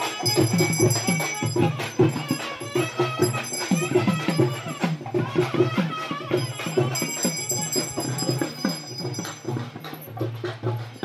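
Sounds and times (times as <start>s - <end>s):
high steady ringing tones: 0.0s - 4.9s, 6.4s - 10.0s
traditional music with drums: 0.0s - 11.0s.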